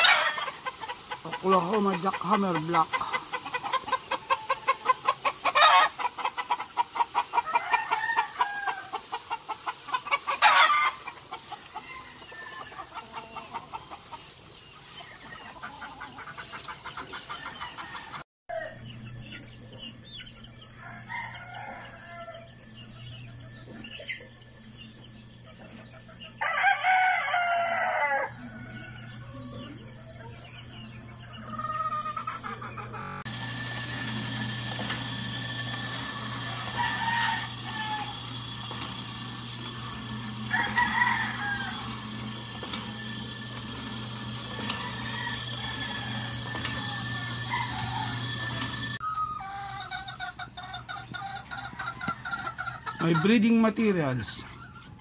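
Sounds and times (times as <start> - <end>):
rooster crowing: 0.0 - 0.6, 7.3 - 9.0, 10.4 - 11.0, 11.7 - 13.5, 17.3 - 18.8, 20.7 - 22.6, 26.4 - 29.0, 33.1 - 50.2
chicken calls: 0.0 - 55.0.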